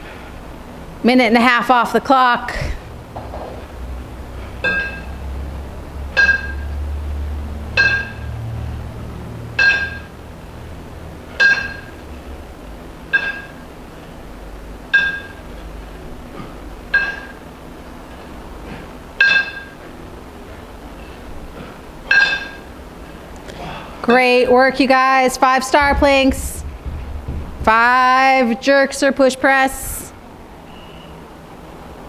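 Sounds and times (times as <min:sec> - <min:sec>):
kettlebells clinking together: 0:04.6 - 0:05.2, 0:06.1 - 0:06.8, 0:07.8 - 0:08.3, 0:09.6 - 0:10.1, 0:11.4 - 0:12.0, 0:13.1 - 0:13.6, 0:14.9 - 0:15.4, 0:16.9 - 0:17.4, 0:19.2 - 0:19.8, 0:22.0 - 0:22.7.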